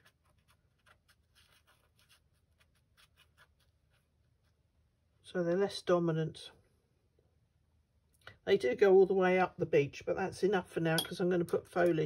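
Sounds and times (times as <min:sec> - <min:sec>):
brush strokes on paper: 0:00.0 - 0:04.8.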